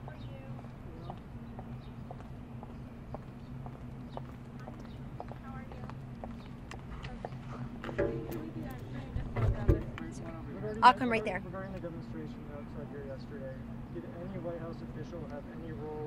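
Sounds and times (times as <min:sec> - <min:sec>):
high heels clicking on asphalt: 0:01.1 - 0:07.4.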